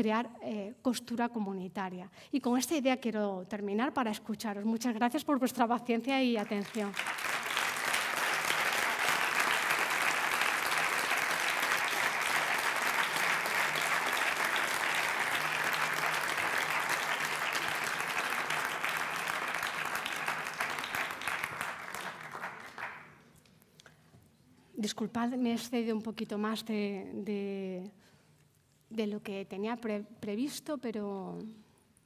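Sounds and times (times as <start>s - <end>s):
audience applauding: 6.4s - 23.1s.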